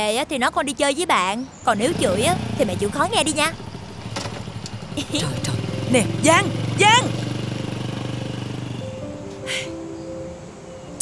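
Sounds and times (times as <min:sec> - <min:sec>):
scooter engine puttering: 0:01.6 - 0:09.2.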